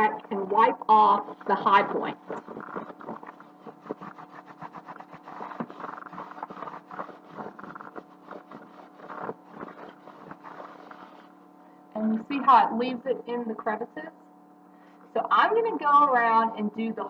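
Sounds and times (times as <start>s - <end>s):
steady low hum: 0.0s - 17.0s
cloth rag rubbing wood: 0.9s - 11.4s.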